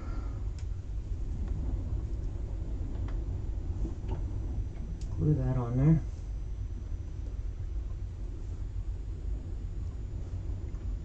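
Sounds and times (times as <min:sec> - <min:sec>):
low background rumble: 0:00.0 - 0:11.0
faint light clicks: 0:00.5 - 0:00.7.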